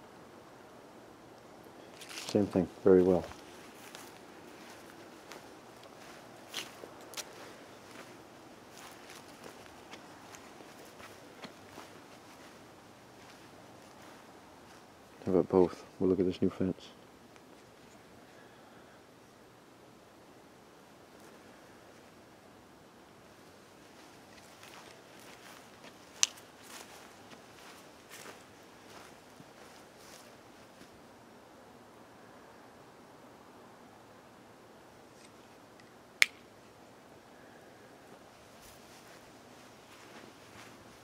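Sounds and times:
faint steady hiss: 0.0 - 41.0
footsteps on grass: 1.8 - 15.9, 23.7 - 31.0, 38.1 - 41.0.

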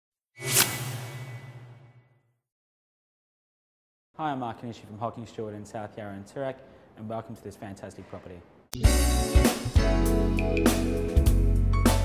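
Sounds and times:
whoosh sound effect: 0.4 - 2.0.

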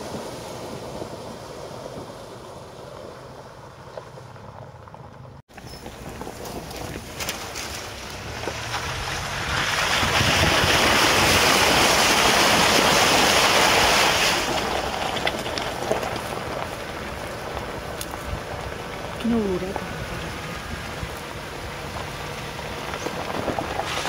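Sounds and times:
water rushing and splashing: 0.0 - 3.2, 6.4 - 24.0.

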